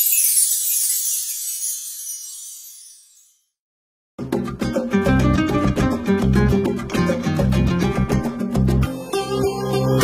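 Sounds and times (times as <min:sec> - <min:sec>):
high glittering shimmer effect: 0:00.0 - 0:03.6.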